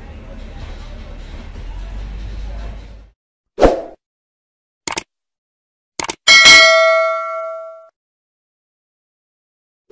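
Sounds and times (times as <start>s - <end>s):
mouse clicks: 4.9s - 5.1s
bright bell ding: 6.3s - 7.9s.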